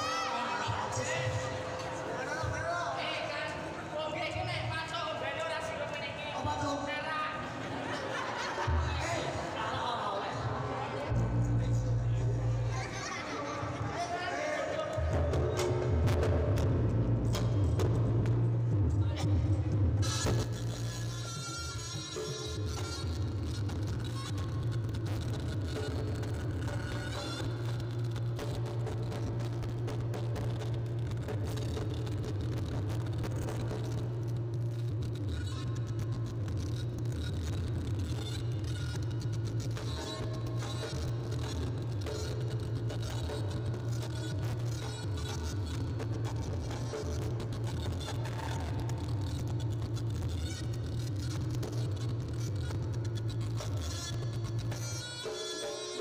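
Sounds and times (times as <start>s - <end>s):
steady low drone: 11.0s - 13.0s.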